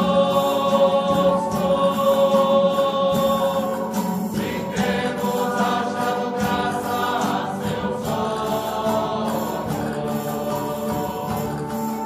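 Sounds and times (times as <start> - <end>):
group singing a slow hymn: 0.0 - 12.0
steady accompaniment: 0.0 - 12.0.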